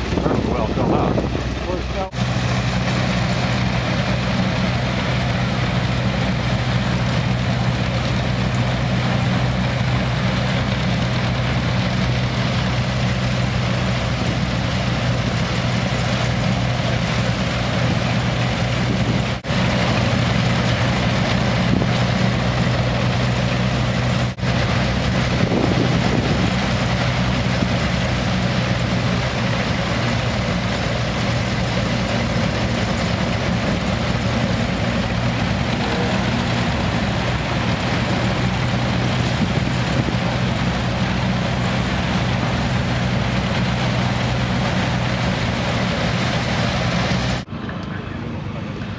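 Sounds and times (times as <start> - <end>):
threshing machine running: 0.0 - 47.9.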